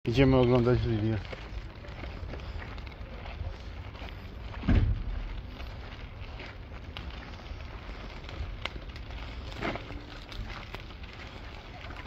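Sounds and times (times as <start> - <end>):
footsteps on gravel: 0.1 - 12.0
short loud low thud: 4.6 - 5.0.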